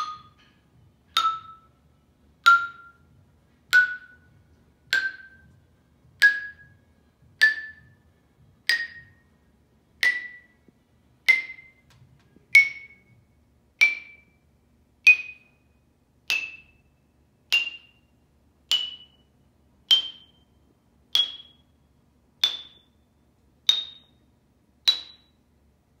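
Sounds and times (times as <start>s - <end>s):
xylophone notes climbing: 0.0s - 1.8s, 2.4s - 9.3s, 10.0s - 10.6s, 11.2s - 13.2s, 13.8s - 14.4s, 18.7s - 19.3s, 19.9s - 20.5s.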